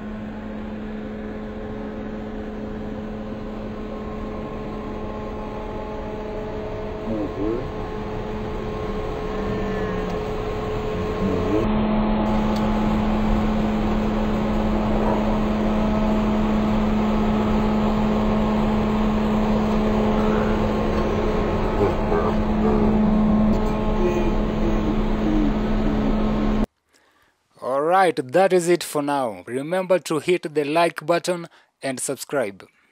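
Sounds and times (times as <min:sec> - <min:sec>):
engine drone: 0:00.0 - 0:26.7.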